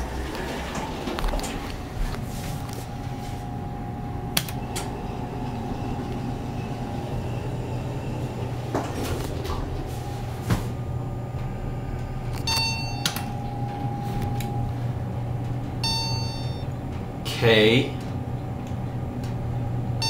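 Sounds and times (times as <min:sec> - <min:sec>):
elevator low hum: 0:00.0 - 0:20.0
short electronic beeps: 0:12.5 - 0:13.4, 0:15.8 - 0:16.7.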